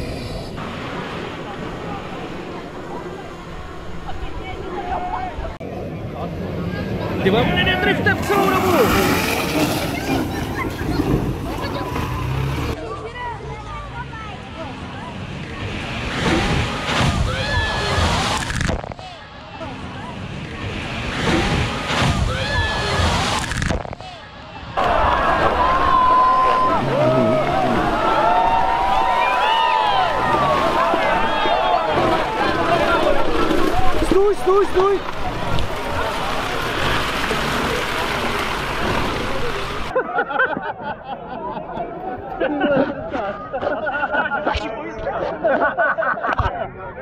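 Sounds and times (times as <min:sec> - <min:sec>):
vehicle splashing through mud water: 0:08.1 - 0:12.8, 0:24.8 - 0:40.0
crowd shouting and cheering: 0:15.5 - 0:40.0.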